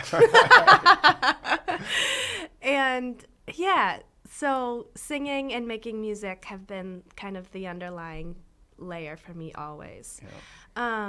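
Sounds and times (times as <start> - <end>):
people laughing: 0.0 - 2.1.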